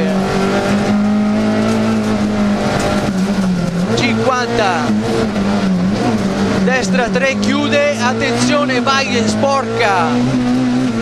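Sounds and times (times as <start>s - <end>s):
car engine running hard: 0.0s - 11.0s.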